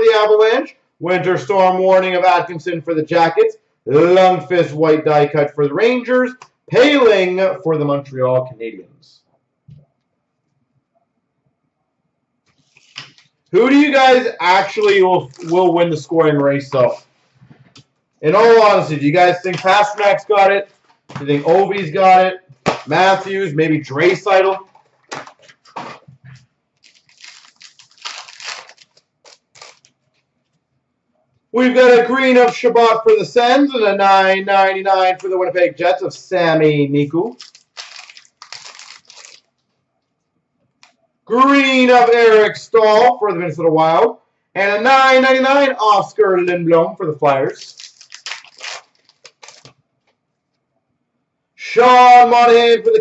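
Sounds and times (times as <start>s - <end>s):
cards rustling: 12.5s - 13.4s, 14.7s - 15.8s, 26.8s - 30.3s, 37.3s - 39.6s, 47.6s - 49.8s
wrapper crinkling and tearing: 14.7s - 15.7s, 26.8s - 30.2s, 37.3s - 39.6s, 47.6s - 49.8s.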